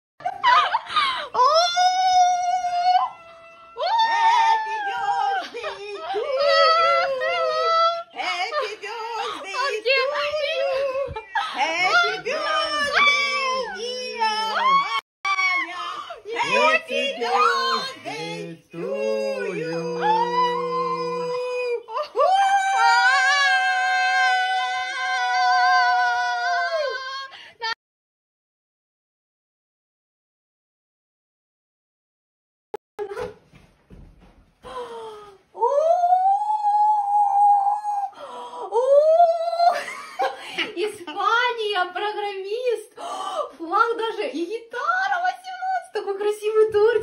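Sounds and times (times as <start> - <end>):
high voice singing held note: 16.5 - 21.6.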